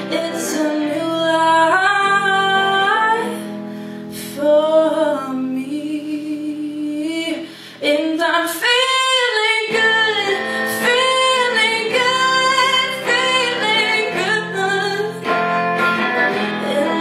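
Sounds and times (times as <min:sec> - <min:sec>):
instrumental backing: 0:00.0 - 0:05.8, 0:07.4 - 0:17.0
woman singing: 0:00.0 - 0:17.0.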